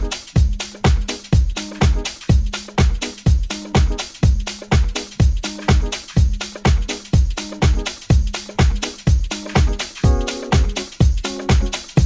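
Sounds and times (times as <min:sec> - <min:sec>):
four-on-the-floor kick drum: 0:00.0 - 0:12.0
off-beat hi-hats: 0:00.0 - 0:12.0.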